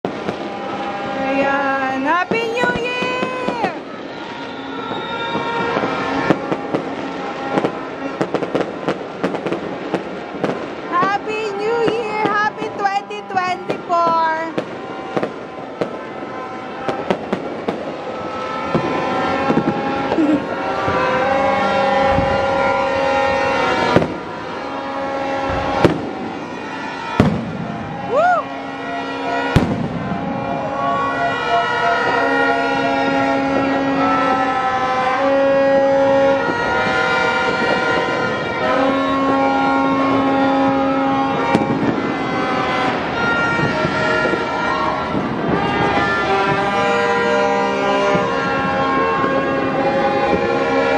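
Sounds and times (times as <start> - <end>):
fireworks and firecrackers banging: 0.0 - 50.9
horns in long held notes: 0.1 - 50.9.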